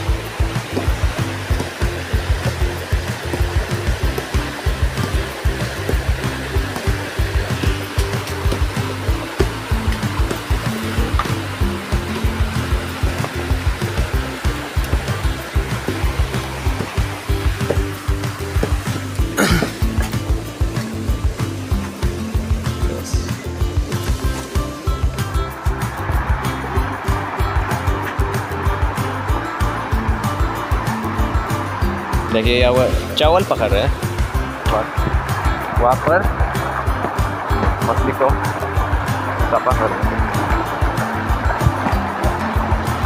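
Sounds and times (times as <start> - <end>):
background music with steady beat: 0.0 - 43.0
flowing river water: 0.0 - 43.0.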